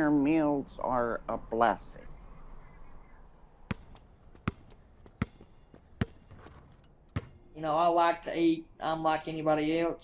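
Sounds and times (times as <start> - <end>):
basketball bouncing on hard floor: 3.7 - 6.6, 7.2 - 7.4.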